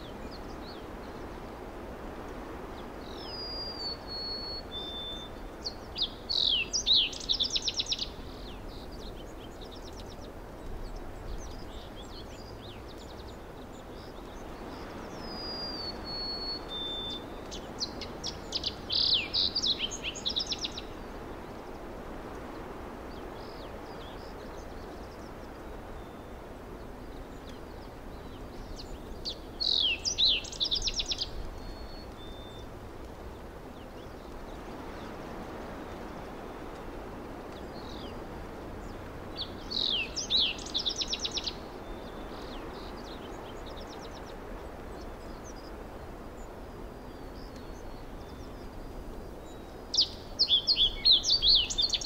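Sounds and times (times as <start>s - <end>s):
outdoor background hiss: 0.0s - 52.0s
songbird singing: 0.0s - 52.0s.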